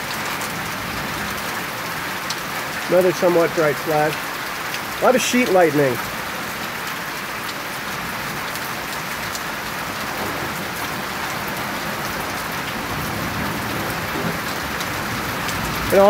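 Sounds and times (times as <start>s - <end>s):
heavy rain pouring: 0.0s - 16.0s.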